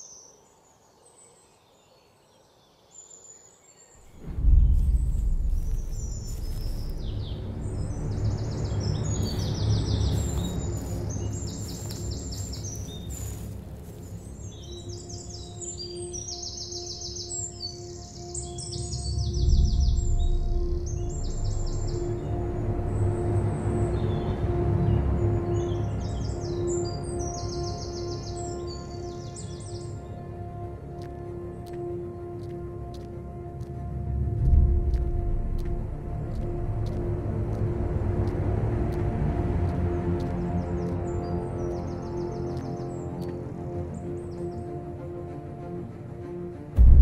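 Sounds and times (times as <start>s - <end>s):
birds chirping in trills: 0.0s - 45.5s
low rumbling drone: 4.1s - 13.4s, 19.1s - 25.8s, 33.2s - 42.3s, 46.8s - 47.0s.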